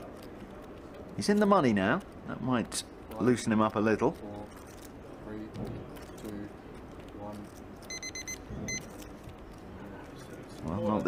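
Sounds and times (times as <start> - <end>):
electronic timer beeps: 7.9 - 8.9.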